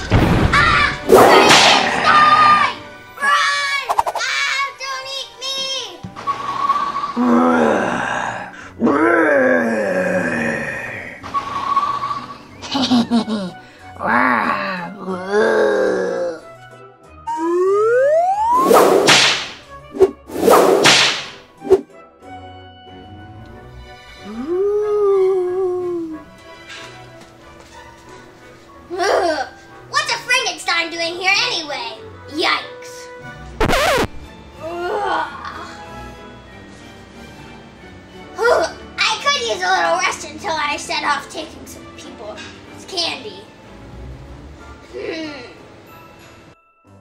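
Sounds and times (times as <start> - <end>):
quiet background music: 0.0 - 47.0
deep monster moans: 7.2 - 11.2, 14.0 - 16.5.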